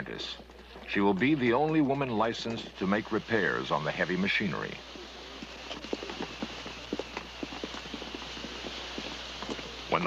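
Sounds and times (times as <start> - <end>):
footsteps on pavement: 0.0 - 4.2, 4.8 - 10.0
steady hiss: 0.0 - 10.0.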